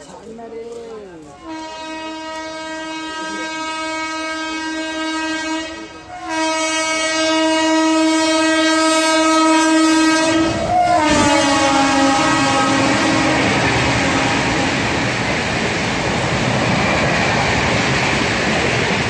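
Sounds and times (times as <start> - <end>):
passing train rumble: 0.0 - 19.0
locomotive horn blasts: 1.4 - 15.0.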